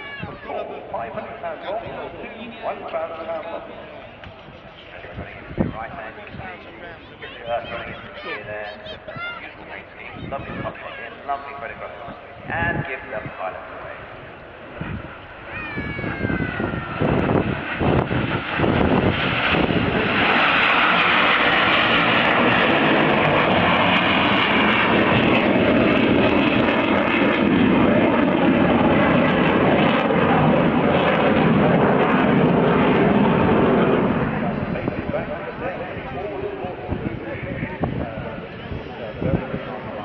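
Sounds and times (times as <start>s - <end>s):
aircraft engines roaring: 0.0s - 40.0s.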